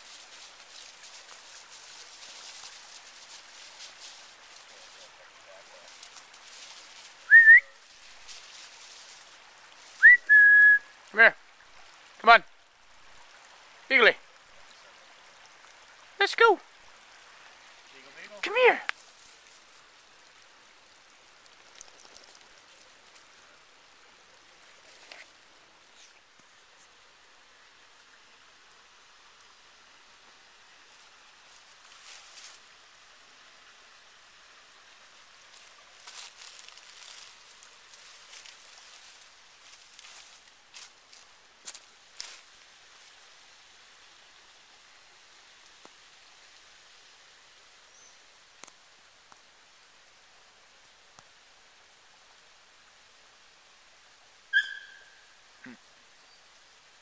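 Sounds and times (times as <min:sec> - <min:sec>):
footsteps through dry leaves: 0:00.0 - 0:10.1, 0:31.5 - 0:32.7, 0:35.5 - 0:42.5
faint steady hiss: 0:00.0 - 0:57.0
sharp high chirp: 0:54.6 - 0:55.1.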